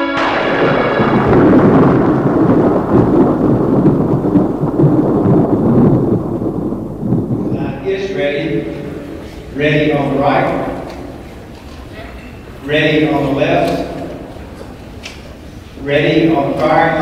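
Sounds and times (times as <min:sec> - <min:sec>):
thunder crack and rumble: 0:00.0 - 0:11.8, 0:12.4 - 0:17.0.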